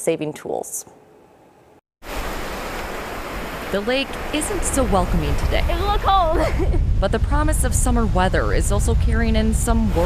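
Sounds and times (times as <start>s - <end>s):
waves washing on shore: 2.0s - 10.0s.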